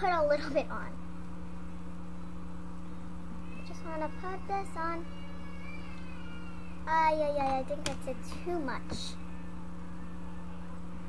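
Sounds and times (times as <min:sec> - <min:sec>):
low electrical hum: 0:00.0 - 0:11.0
faint high wavering cry: 0:02.8 - 0:07.4.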